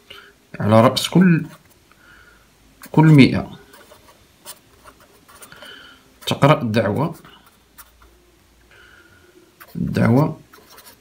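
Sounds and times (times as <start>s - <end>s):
marker pen scratching on paper: 1.4s - 1.8s, 2.8s - 8.1s, 9.6s - 11.0s.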